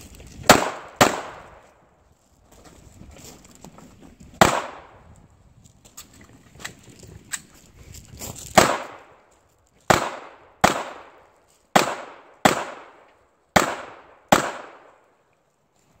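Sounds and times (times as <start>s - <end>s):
handgun shots with echo: 0.5s - 1.7s, 4.4s - 4.9s, 8.5s - 9.2s, 9.9s - 15.0s.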